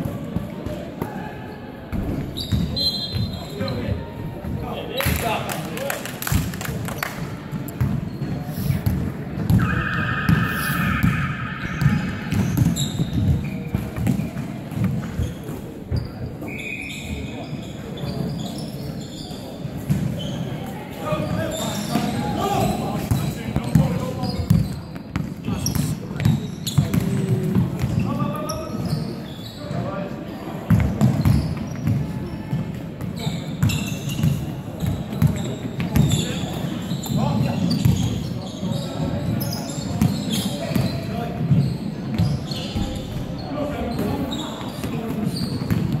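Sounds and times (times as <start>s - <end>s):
shoe squeaks: 2.3s - 3.9s, 8.0s - 8.9s, 9.6s - 14.3s, 15.1s - 20.5s, 21.1s - 27.1s, 28.0s - 29.8s, 33.2s - 46.0s
players shouting: 9.5s - 13.3s
basketball bouncing on wooden court: 11.0s - 16.1s, 26.2s - 28.0s, 45.5s - 46.0s.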